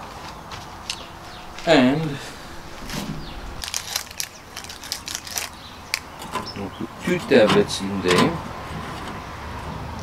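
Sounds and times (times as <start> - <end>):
plastic packaging crinkling: 2.8 - 6.1.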